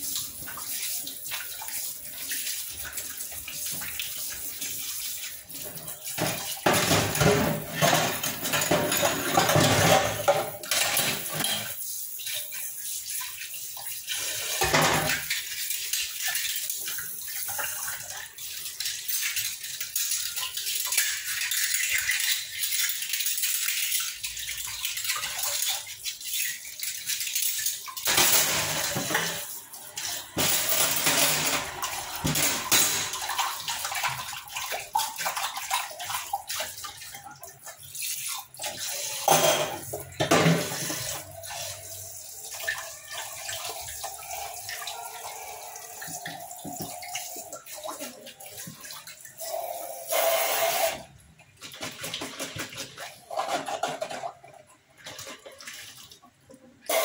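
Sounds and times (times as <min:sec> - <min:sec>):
tap water splashing in sink: 0:00.0 - 0:57.0
steel vessels and glasses clinking: 0:28.1 - 0:33.3, 0:39.0 - 0:41.9.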